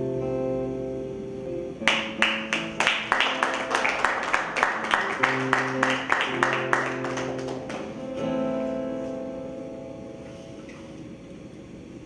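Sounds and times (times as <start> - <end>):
audience applause: 1.9 - 8.0.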